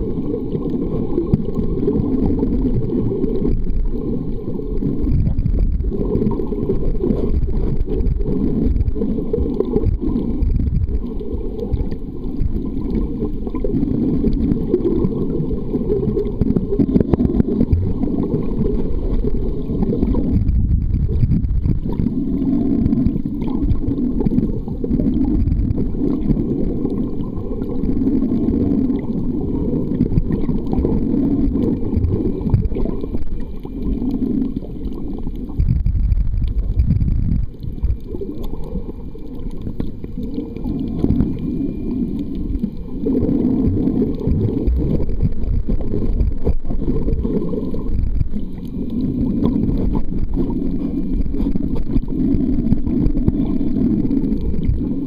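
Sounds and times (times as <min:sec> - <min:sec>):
muffled underwater rumble: 0:00.0 - 0:55.0.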